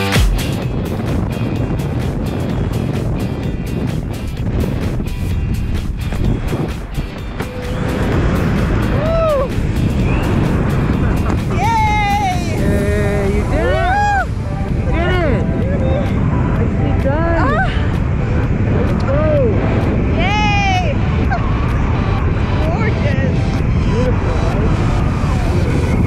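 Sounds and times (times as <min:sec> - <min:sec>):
wind buffeting microphone: 0:00.3 - 0:26.0
person calling out: 0:11.5 - 0:14.2.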